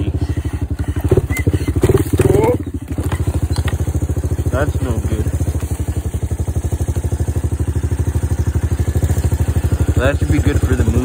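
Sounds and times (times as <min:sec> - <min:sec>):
single-cylinder engine running: 0:00.0 - 0:11.0.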